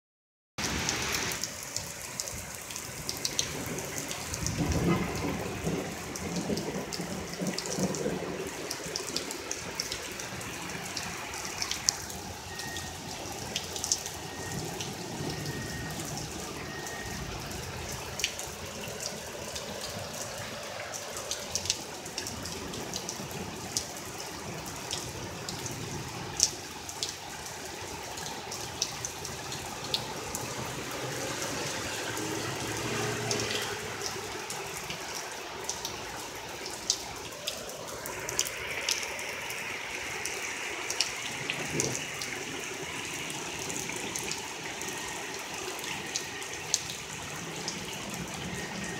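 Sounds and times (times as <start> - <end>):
heavy rain falling: 0.6 - 48.9
sharp taps of raindrops: 40.9 - 42.4.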